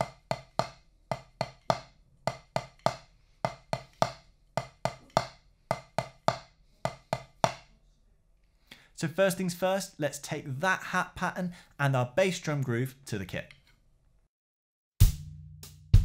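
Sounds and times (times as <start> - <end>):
drumsticks striking practice pad: 0.0 - 7.7.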